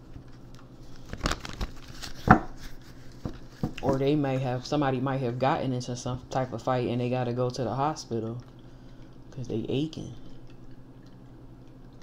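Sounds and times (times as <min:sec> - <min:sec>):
woman speaking: 0:03.8 - 0:08.4, 0:09.4 - 0:10.2.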